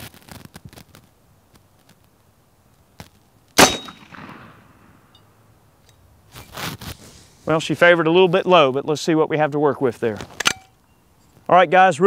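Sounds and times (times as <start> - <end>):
air rifle shot crack: 3.6 - 5.1.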